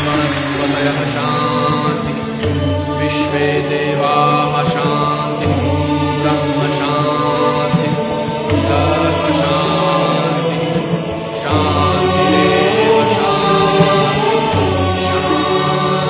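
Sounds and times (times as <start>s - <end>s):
music with low drone: 0.0s - 16.0s
person chanting: 0.0s - 16.0s.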